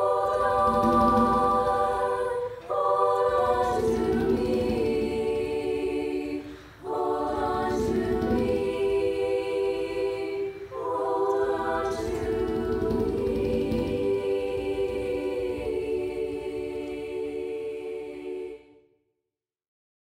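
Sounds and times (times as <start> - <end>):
girls choir singing a hymn: 0.0 - 18.9.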